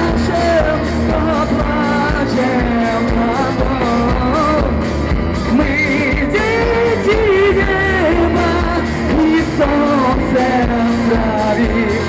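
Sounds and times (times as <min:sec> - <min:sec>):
acoustic bass guitar: 0:00.0 - 0:12.0
drums: 0:00.0 - 0:12.0.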